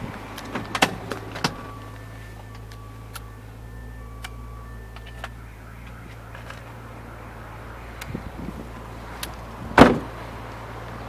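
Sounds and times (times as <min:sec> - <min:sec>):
car door shutting: 0:00.1 - 0:03.3, 0:09.2 - 0:10.2.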